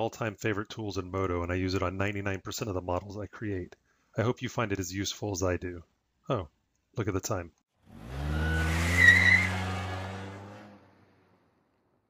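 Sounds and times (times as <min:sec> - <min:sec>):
tyre squeal: 0:08.3 - 0:10.4.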